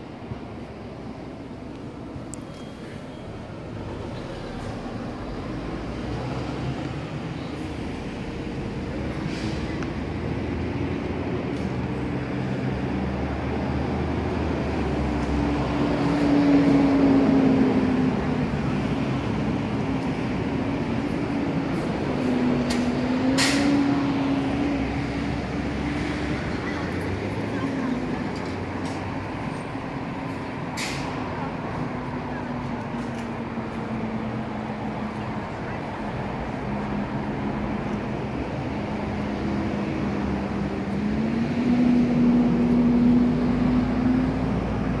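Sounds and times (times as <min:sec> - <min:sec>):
heavy vehicle engine hum: 0:00.0 - 0:45.0
outdoor background noise: 0:00.0 - 0:45.0.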